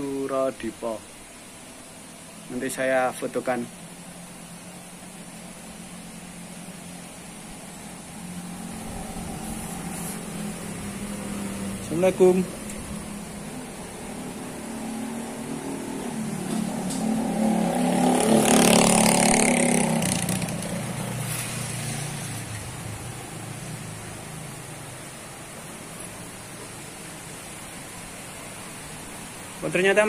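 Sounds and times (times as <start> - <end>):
motor vehicle passing by: 3.5 - 29.5.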